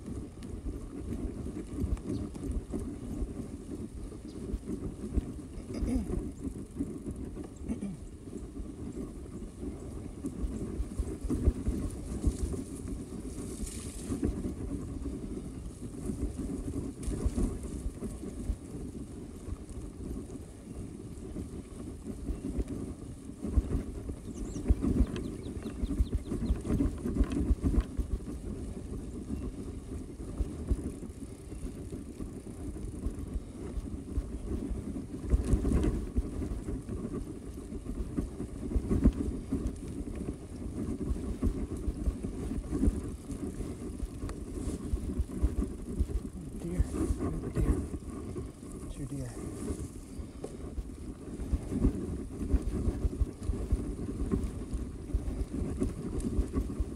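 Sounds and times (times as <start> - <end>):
bike tyres rumbling on dirt: 0.0 - 56.9
wind noise on microphone: 0.0 - 56.9
bike rattles and knocks: 8.8 - 48.9.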